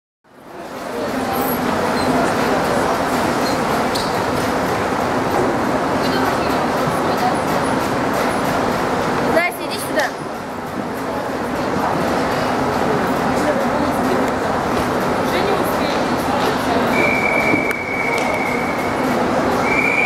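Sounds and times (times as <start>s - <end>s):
echoing hubbub of voices: 0.3s - 20.0s.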